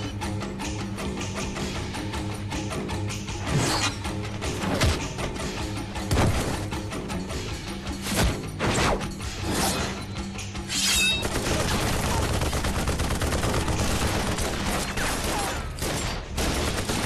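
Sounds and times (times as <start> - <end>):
automatic gunfire: 11.2 - 17.0.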